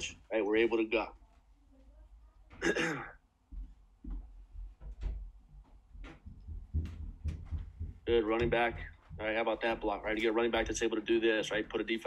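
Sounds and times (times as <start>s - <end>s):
man clearing his throat: 2.6s - 3.2s
faint low thuds and ticks: 3.4s - 11.9s.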